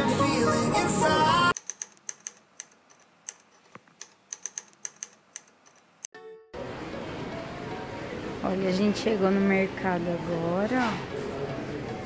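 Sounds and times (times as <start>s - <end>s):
pop song: 0.0s - 1.6s
shop ambience hum: 0.0s - 12.0s.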